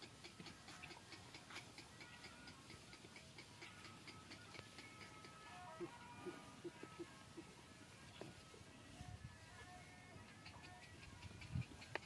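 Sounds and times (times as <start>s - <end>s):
faint rapid regular ticking: 0.0s - 6.0s, 10.2s - 12.0s.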